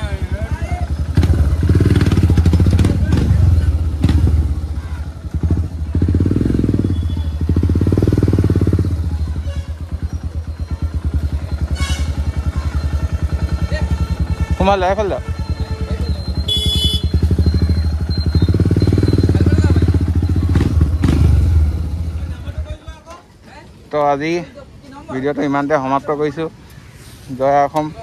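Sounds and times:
motorcycle engine running: 0.0s - 22.8s.

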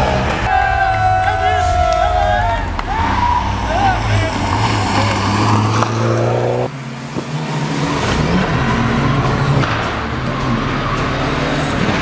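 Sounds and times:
voices shouting: 0.0s - 5.8s
rally car engines: 0.0s - 12.0s.

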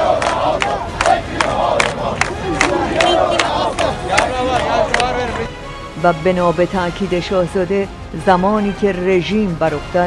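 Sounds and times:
crowd shouting slogans: 0.0s - 5.4s.

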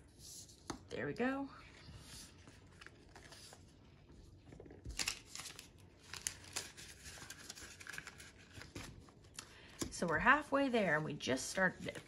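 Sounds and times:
plastic banknotes rustling: 4.6s - 10.1s.

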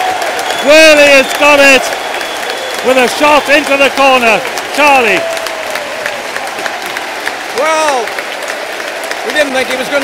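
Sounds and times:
crowd clapping: 0.0s - 10.0s.

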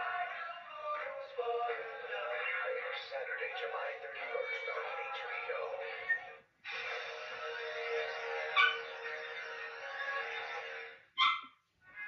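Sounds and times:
music through television speaker: 0.0s - 11.2s.

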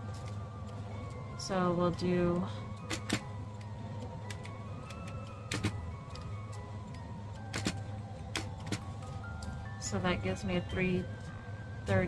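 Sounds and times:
soft background music: 0.0s - 12.0s
calculator keys clicking: 2.3s - 6.6s, 7.4s - 8.9s.

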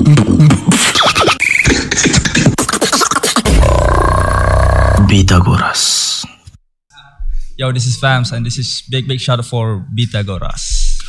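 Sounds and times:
beatboxing mouth percussion: 0.0s - 5.1s.

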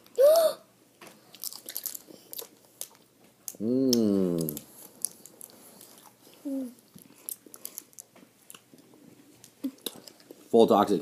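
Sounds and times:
lip smacks and tongue clicks: 9.4s - 10.4s.

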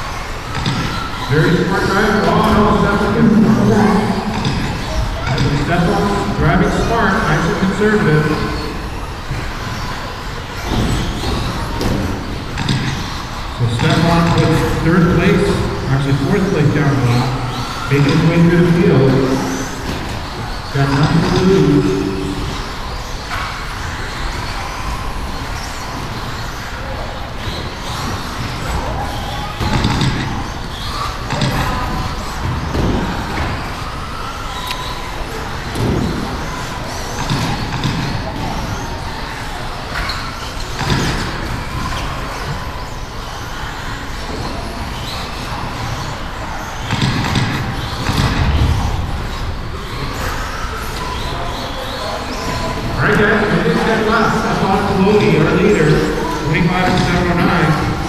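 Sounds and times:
indistinct voices: 0.0s - 58.0s.

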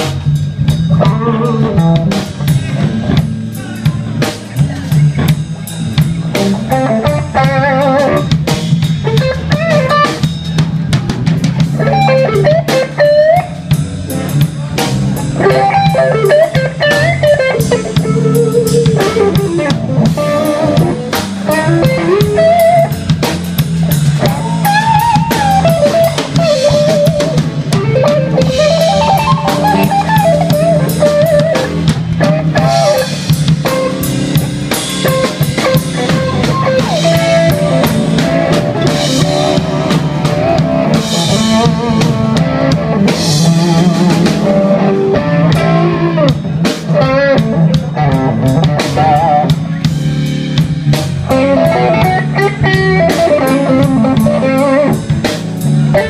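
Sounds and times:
drum kit: 0.0s - 56.0s
electric bass: 0.0s - 56.0s
electric guitar lead: 0.0s - 56.0s.

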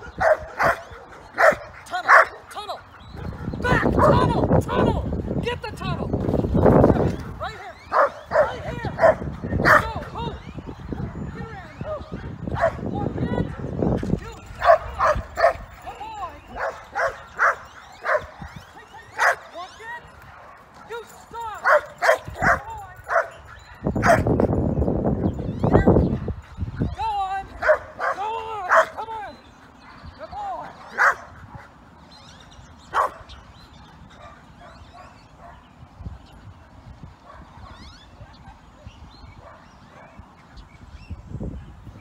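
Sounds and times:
dog barking in high yips: 7.9s - 9.9s, 19.2s - 19.5s, 30.9s - 31.2s, 32.9s - 33.2s.

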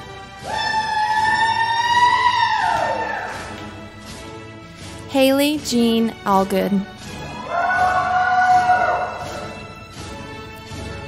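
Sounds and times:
high-pitched celebratory hoot: 0.4s - 3.5s, 7.4s - 9.6s.

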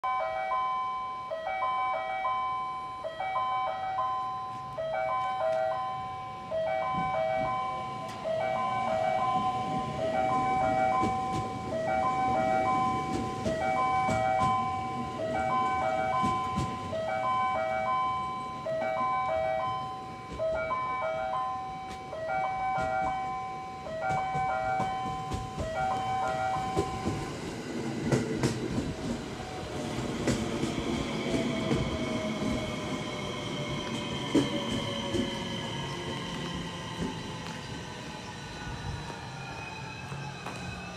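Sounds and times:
electronic warning chime: 0.0s - 27.2s
train wheels rumbling on rails: 6.7s - 40.9s.

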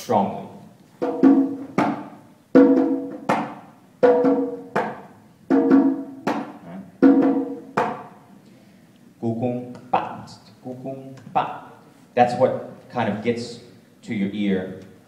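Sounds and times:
conga drums played by hand: 1.0s - 8.2s.

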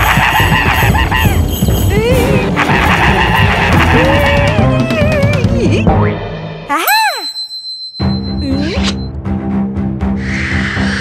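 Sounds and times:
cartoon soundtrack music: 0.0s - 7.4s, 8.0s - 11.0s.

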